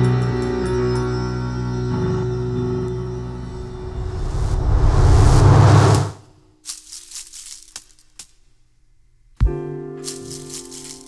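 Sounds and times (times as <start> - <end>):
processed sound wash: 2.1 - 6.4
plant leaves rattling and scratching: 6.6 - 8.7, 10.0 - 11.0.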